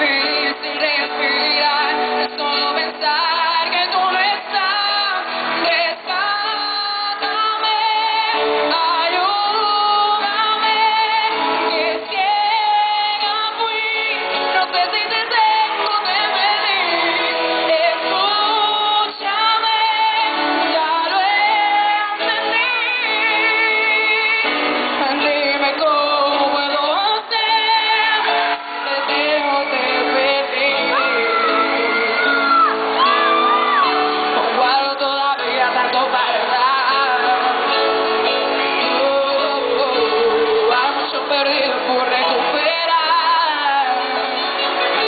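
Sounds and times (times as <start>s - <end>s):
girl singing into microphone: 0.0s - 37.6s
music accompaniment: 0.0s - 45.0s.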